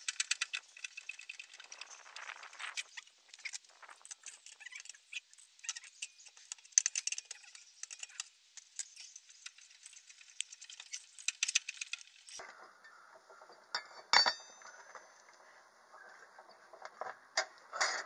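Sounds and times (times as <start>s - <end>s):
lug wrench clinking on lug nuts: 13.8s - 14.7s
metal clank ringing: 13.8s - 14.7s.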